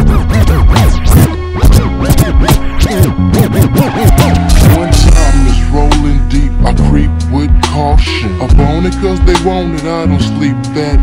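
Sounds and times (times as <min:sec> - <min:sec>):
record scratches: 0:00.0 - 0:05.2
bass line: 0:00.0 - 0:11.0
slowed hip-hop beat: 0:00.0 - 0:11.0.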